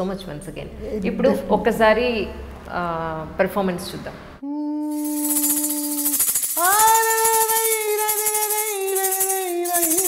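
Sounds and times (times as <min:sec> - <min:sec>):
person singing a held note: 0:04.4 - 0:10.0
plastic rattle shaken fast: 0:04.9 - 0:10.0.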